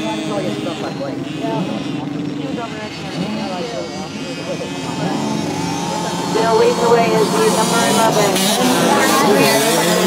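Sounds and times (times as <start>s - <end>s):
motorcycle engines racing: 0.0s - 10.0s
voices talking: 0.0s - 10.0s.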